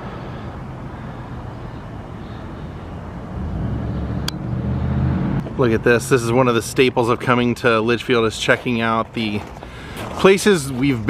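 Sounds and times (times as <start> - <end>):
street traffic: 0.0 - 11.0
vehicle engine hum: 0.0 - 11.0.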